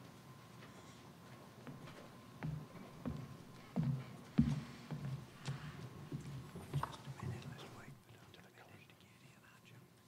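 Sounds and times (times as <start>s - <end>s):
whispered voices: 6.3s - 10.0s.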